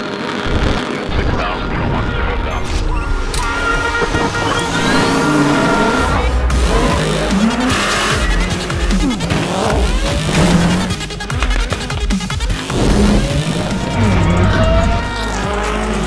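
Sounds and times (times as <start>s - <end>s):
background music: 1.7s - 16.0s
race car engines revving: 4.0s - 16.0s.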